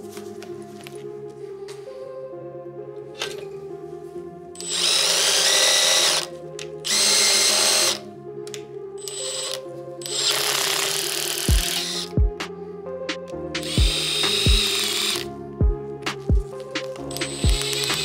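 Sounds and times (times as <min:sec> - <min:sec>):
cordless drill running: 0:04.6 - 0:06.3, 0:06.9 - 0:08.0, 0:09.1 - 0:12.1, 0:13.6 - 0:15.2, 0:17.2 - 0:18.0.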